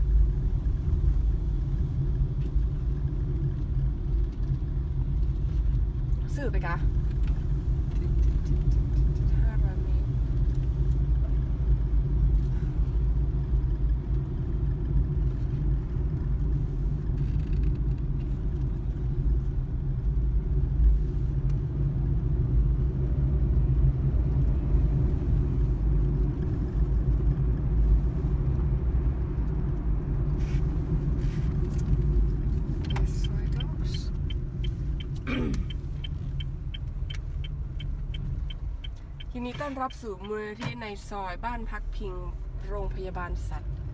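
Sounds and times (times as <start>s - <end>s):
road rumble inside car: 0.0s - 43.9s.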